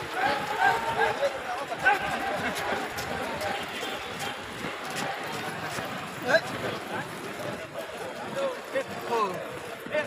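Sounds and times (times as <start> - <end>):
murmur of voices: 0.0 - 10.0
boots marching on pavement: 1.7 - 10.0.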